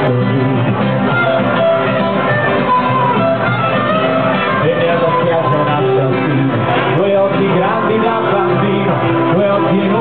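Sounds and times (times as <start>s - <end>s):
strummed acoustic guitar: 0.0s - 10.0s
bowed violin: 1.0s - 6.2s.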